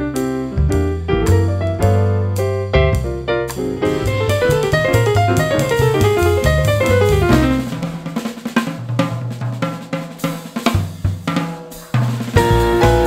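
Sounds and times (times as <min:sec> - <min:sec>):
jazz band with keyboard chords: 0:00.0 - 0:13.0
drum kit break: 0:00.1 - 0:13.0.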